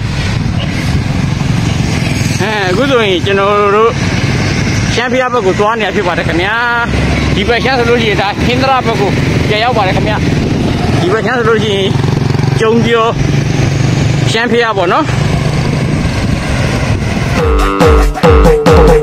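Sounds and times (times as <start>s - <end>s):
road traffic rumble: 0.0s - 18.8s
truck engine running: 0.0s - 18.9s
motorbike engine running: 0.4s - 19.0s
people talking: 2.4s - 4.0s, 4.9s - 10.3s, 11.0s - 12.0s, 12.6s - 13.2s, 14.2s - 15.2s.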